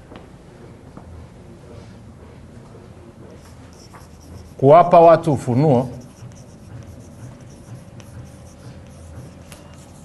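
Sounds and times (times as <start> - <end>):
chalk scratching on blackboard: 3.4 - 10.0
chalk ticking against board: 3.4 - 10.0.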